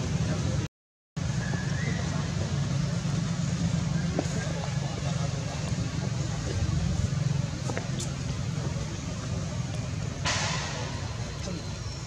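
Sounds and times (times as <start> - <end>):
steady low rumble: 2.2 - 12.0.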